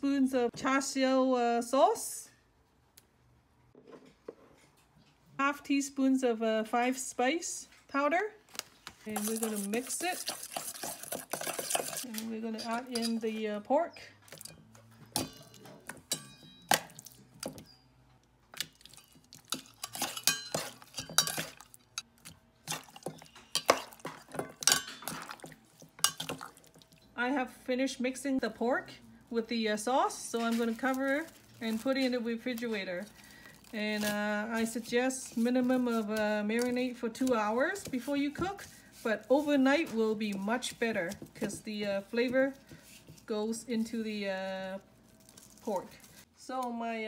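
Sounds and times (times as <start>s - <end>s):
spoon clinking on metal bowl: 9.2s - 13.2s, 14.3s - 17.0s, 18.9s - 21.7s, 23.0s - 27.2s.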